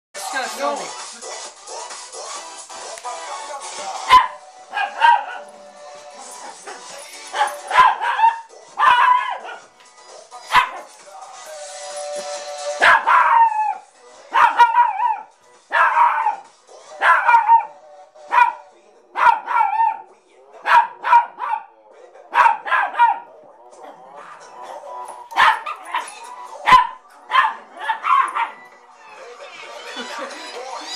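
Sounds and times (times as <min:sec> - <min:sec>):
pop song playing: 0:00.2 - 0:30.9
dog barking: 0:04.0 - 0:05.5, 0:06.4 - 0:09.7, 0:10.5 - 0:10.9, 0:12.8 - 0:16.4, 0:17.0 - 0:24.0, 0:24.6 - 0:28.7.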